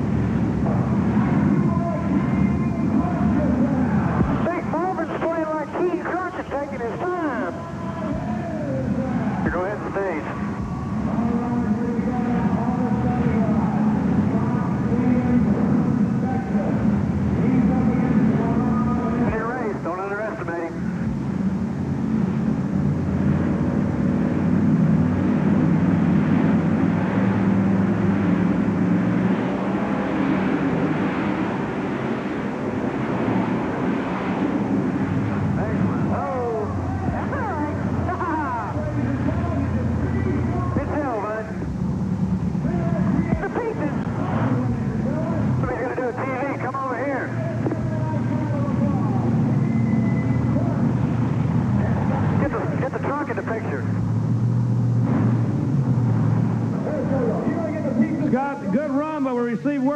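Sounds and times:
monster truck engines roaring: 0.0 - 59.9.

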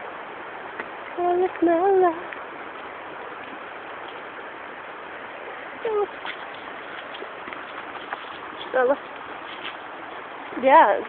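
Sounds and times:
person calling out: 5.8 - 6.1.

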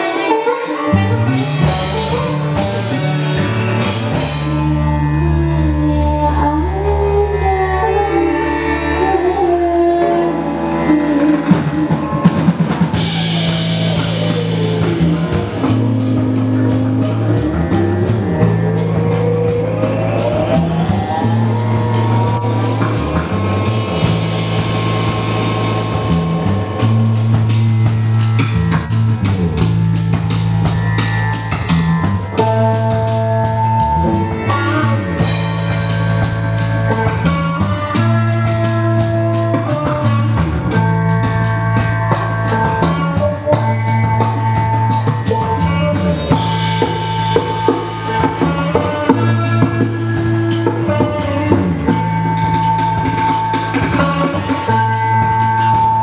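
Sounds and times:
drum kit with cymbals: 0.0 - 6.1, 11.1 - 56.0
bass guitar: 0.0 - 56.0
rock band playing: 0.0 - 56.0
sitar melody: 0.0 - 56.0.

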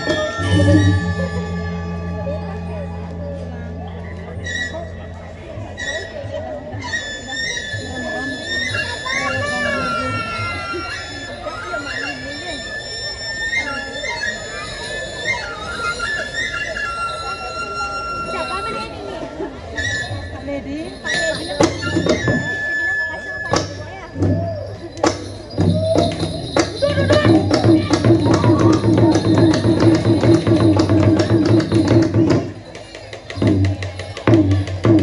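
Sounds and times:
gamelan ensemble playing: 0.0 - 7.3, 17.1 - 35.0
crowd voices: 0.0 - 35.0.

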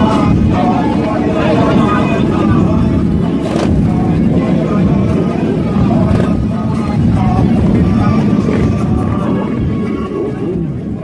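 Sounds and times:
crowd talking: 0.0 - 11.0
motorcycle engines rumbling: 0.0 - 11.0.

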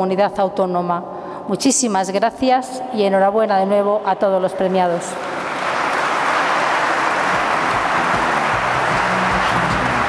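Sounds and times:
audience applauding: 5.2 - 10.0.

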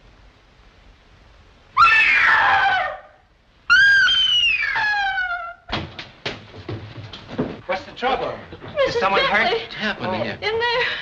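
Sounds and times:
woman screaming: 1.8 - 5.7.

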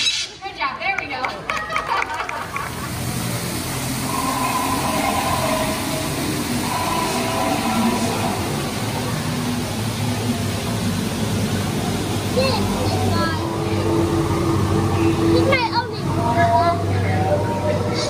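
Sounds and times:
steady rushing noise: 2.4 - 18.0
faint drifting tones: 2.7 - 18.0.

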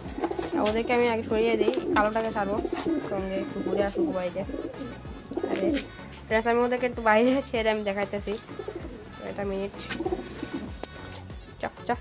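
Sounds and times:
pigeons cooing: 0.0 - 6.0, 8.4 - 11.2.

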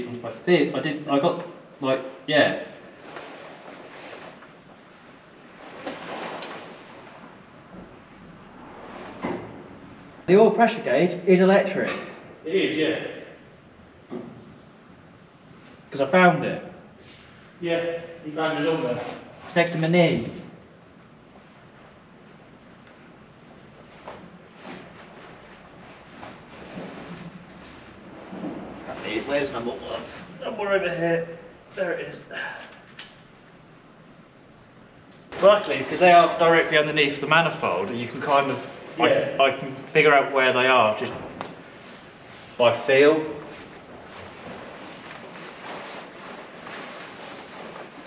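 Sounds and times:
rustling and scuffing: 2.9 - 7.8, 21.3 - 30.5, 41.0 - 48.0.

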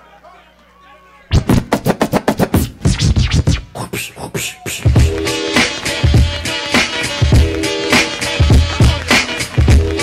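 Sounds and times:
vinyl record scratching: 1.3 - 10.0.

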